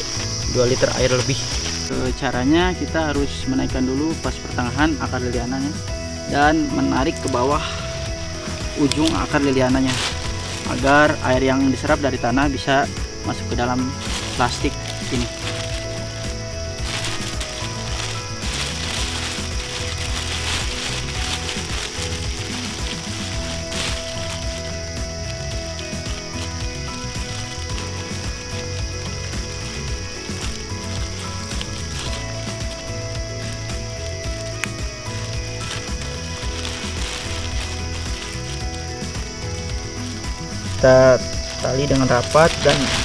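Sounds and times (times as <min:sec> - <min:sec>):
insect chorus chirring: 0:00.0 - 0:43.0
soft background music: 0:00.0 - 0:43.0.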